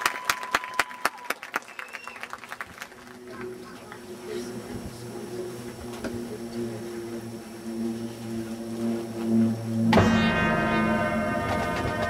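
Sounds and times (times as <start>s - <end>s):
marching band sustained chord: 2.8s - 12.0s.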